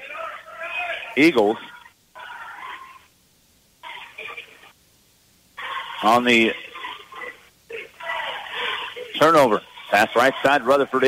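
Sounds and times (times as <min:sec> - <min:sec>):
voices over phone line: 0:00.0 - 0:03.2, 0:03.8 - 0:04.8, 0:05.5 - 0:11.0.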